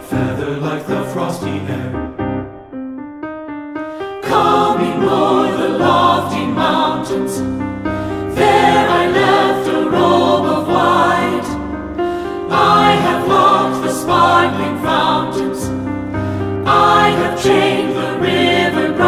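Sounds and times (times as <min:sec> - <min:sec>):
mixed choir singing: 0:00.0 - 0:02.2, 0:04.2 - 0:19.0
piano accompaniment: 0:00.0 - 0:19.0.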